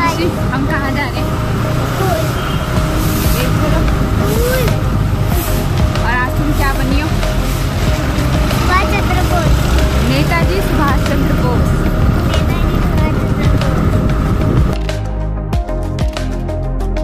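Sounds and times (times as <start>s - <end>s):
voices talking: 0.0s - 14.6s
low rumble of vehicles: 0.0s - 15.8s.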